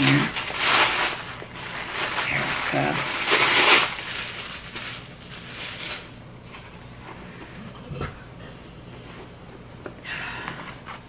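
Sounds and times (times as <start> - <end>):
tissue paper rustling: 0.0 - 6.7.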